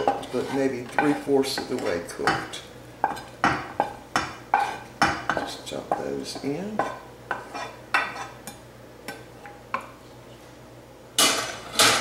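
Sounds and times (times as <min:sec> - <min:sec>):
wooden spatula scraping a skillet: 0:00.0 - 0:05.5, 0:06.4 - 0:08.4.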